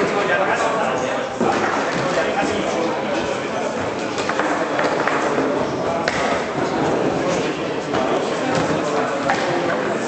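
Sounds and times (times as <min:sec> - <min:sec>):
voices echoing in hall: 0:00.0 - 0:10.0.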